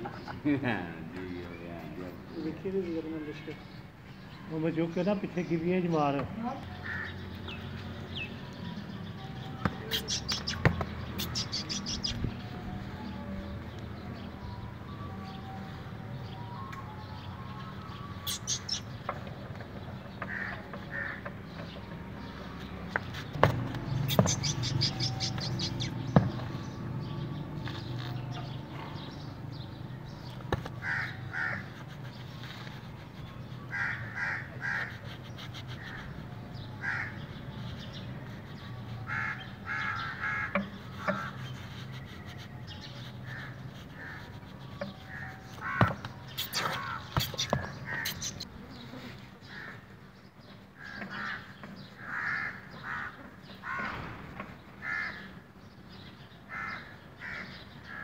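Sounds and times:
crows cawing: 6.8s - 7.2s, 20.2s - 21.3s, 30.8s - 31.7s, 33.7s - 35.0s, 36.8s - 37.2s, 39.1s - 41.3s, 45.1s - 46.0s, 46.8s - 48.4s, 49.5s - 49.8s, 50.8s - 54.0s, 54.8s - 55.3s, 56.5s - 58.0s
bird calling: 9.6s - 12.6s, 18.0s - 19.1s, 23.0s - 28.5s, 30.3s - 49.8s.

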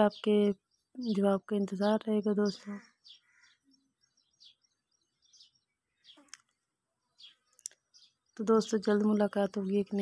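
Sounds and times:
high bird chirps: 0.0s - 10.0s.

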